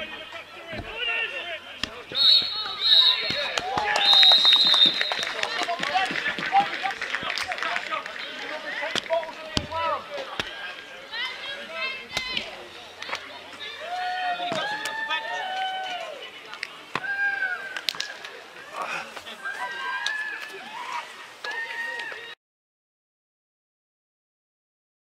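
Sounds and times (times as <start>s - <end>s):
players and spectators shouting: 0.0s - 22.4s
referee's whistle blasts: 2.1s - 5.6s.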